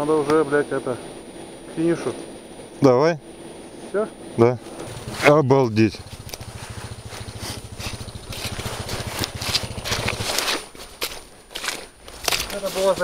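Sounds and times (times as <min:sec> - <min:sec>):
motorcycle engine at low revs: 0:04.6 - 0:10.9
cracks from brush: 0:06.2 - 0:13.0.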